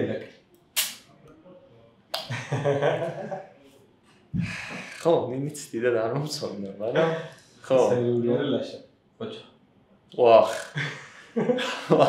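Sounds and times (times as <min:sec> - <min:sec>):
sharp click: 0:00.6 - 0:01.1.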